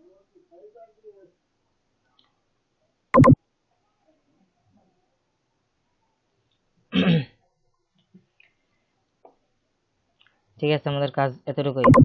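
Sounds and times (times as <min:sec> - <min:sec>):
person clearing throat: 0:06.9 - 0:07.4.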